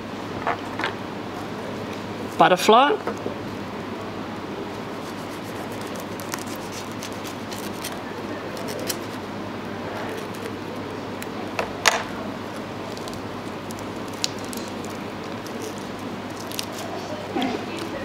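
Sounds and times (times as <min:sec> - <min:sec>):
knife cutting prawn: 0:05.0 - 0:08.0.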